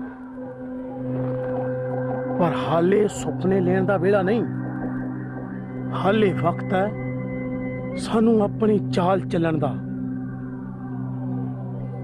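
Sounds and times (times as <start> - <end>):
sustained film score drone: 0.0 - 12.0.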